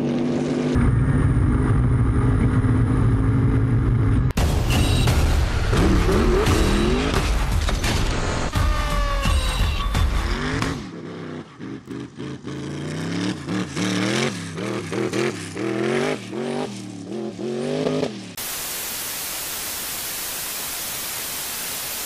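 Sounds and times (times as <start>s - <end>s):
dune buggy engine revving: 5.7s - 7.2s, 8.2s - 18.4s
static hiss: 18.4s - 22.0s.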